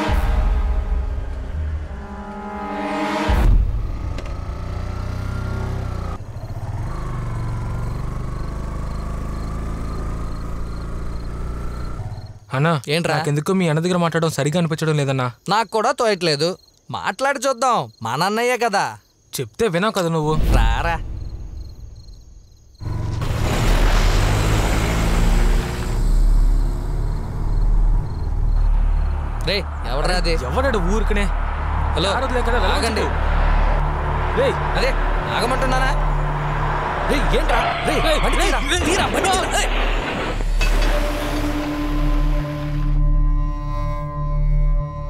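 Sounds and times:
motorcycle engine running: 0:03.8 - 0:12.3
car accelerating hard: 0:22.8 - 0:39.2
tyres churning loose dirt: 0:37.1 - 0:41.7.

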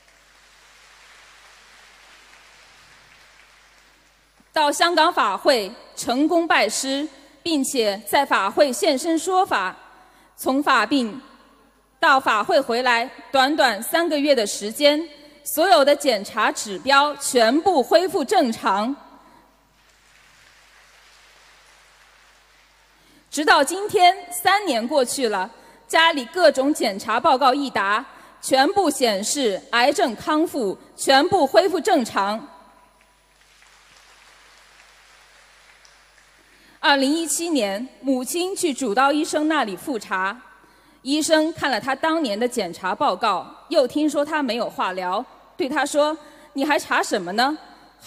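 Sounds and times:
faint steady hiss: 0:00.0 - 0:06.1, 0:19.0 - 0:26.0, 0:32.5 - 0:38.5.

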